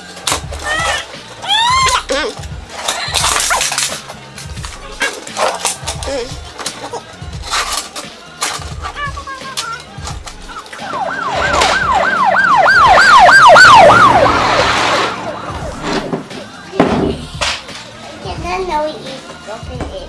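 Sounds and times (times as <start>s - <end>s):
yelping siren: 10.8s - 16.0s.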